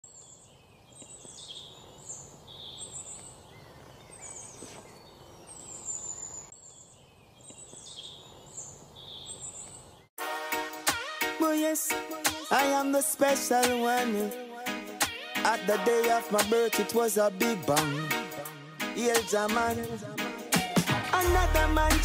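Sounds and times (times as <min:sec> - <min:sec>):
birds calling and singing: 0:00.0 - 0:10.1
faint outdoor hiss: 0:00.0 - 0:10.1.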